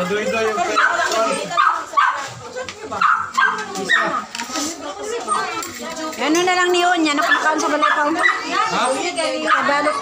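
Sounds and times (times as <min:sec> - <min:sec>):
overlapping voices talking: 0:00.0 - 0:10.0.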